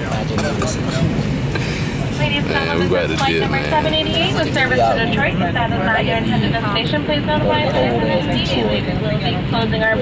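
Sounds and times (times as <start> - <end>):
announcement over public address: 0.0 - 10.0
low cabin rumble: 0.0 - 10.0
passengers talking: 0.0 - 10.0.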